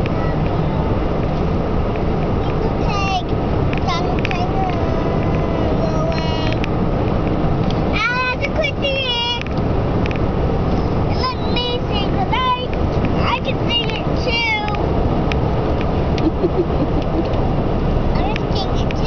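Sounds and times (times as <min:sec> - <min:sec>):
car cabin road noise: 0:00.0 - 0:19.0.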